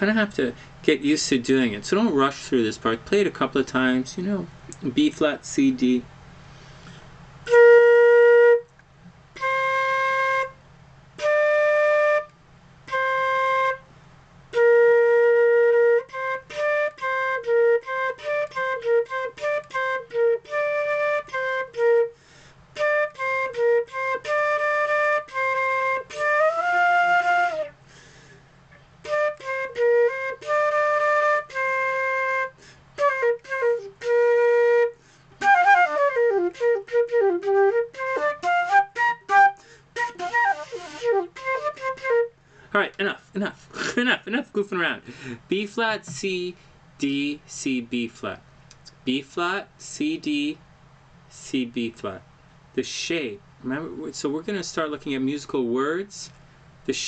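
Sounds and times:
solo flute playing: 7.4s - 8.7s, 9.4s - 10.6s, 11.2s - 13.9s, 14.5s - 27.8s, 29.0s - 42.4s.

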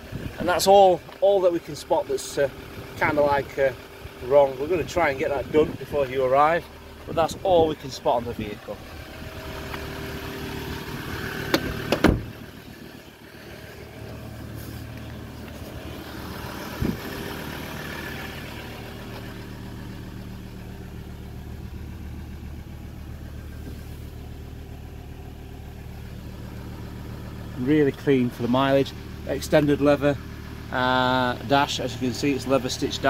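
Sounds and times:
diesel engine idling: 0.0s - 33.0s.

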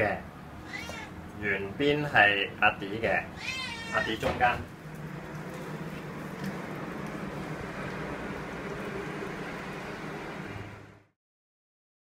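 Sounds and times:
background hiss and hum: 0.0s - 11.1s.

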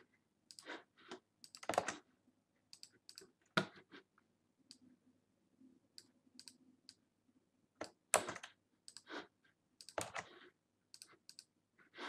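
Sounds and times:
computer mouse clicks: 0.5s - 2.0s, 2.7s - 3.8s, 5.9s - 7.0s, 7.8s - 9.1s, 9.8s - 11.5s.

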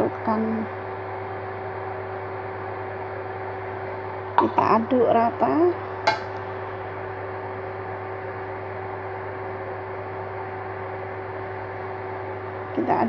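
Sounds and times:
appliance electrical hum: 0.0s - 13.0s.

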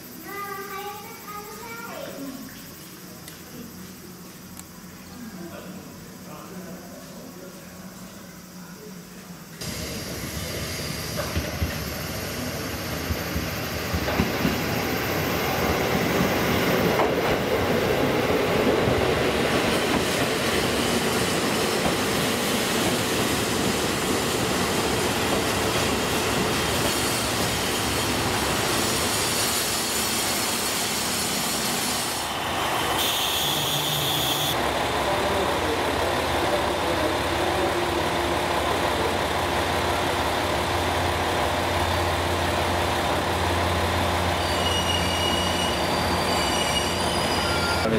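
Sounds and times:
train wheels rumbling over rails: 9.6s - 33.0s, 34.6s - 47.9s
diesel engine hum: 33.6s - 44.4s.

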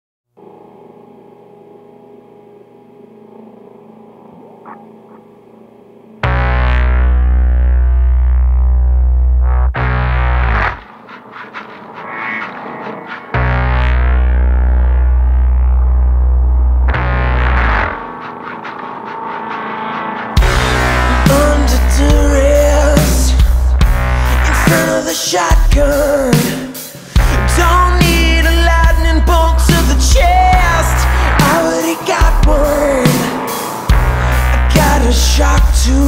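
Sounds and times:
effect-laden guitar drone: 0.4s - 26.0s, 27.0s - 36.0s
distorted guitar and bass: 0.4s - 36.0s.

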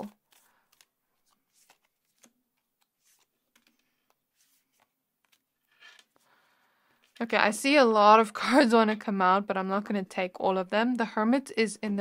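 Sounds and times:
shuffling cards: 0.0s - 6.2s.

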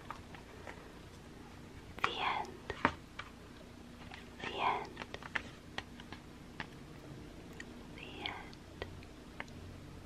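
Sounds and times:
person whispering: 2.0s - 2.7s, 4.4s - 5.1s, 8.0s - 8.9s.

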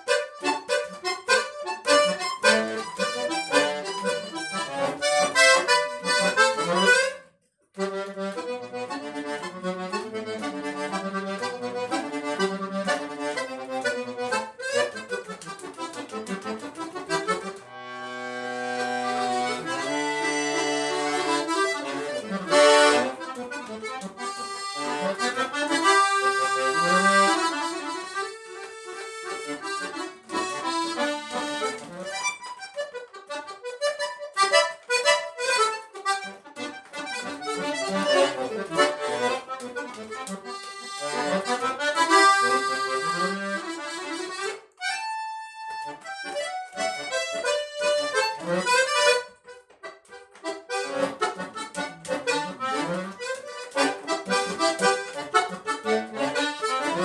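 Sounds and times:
button accordion playing: 0.0s - 57.0s.

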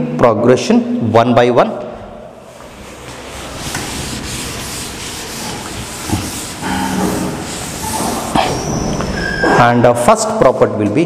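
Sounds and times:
duster rubbing blackboard: 2.4s - 9.1s.

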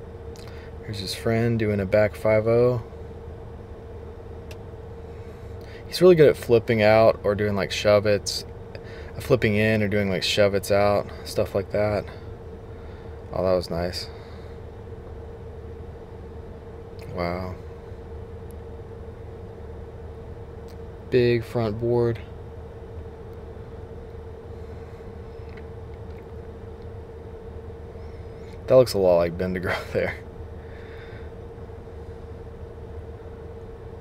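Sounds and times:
car cabin hum and rumble: 0.0s - 30.7s.

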